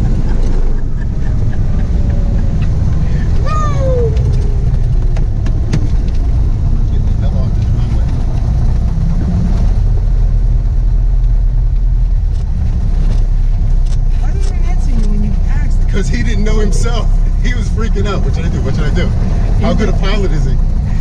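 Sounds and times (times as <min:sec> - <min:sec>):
propeller engine low drone: 0:00.0 - 0:21.0.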